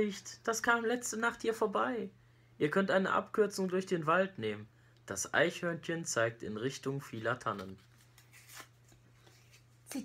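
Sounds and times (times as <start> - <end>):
paper card rustle: 7.1 - 9.8.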